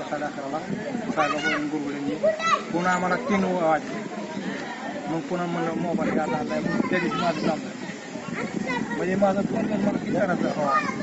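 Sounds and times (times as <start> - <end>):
man talking: 0.0 - 4.0, 5.0 - 7.8, 9.0 - 11.0.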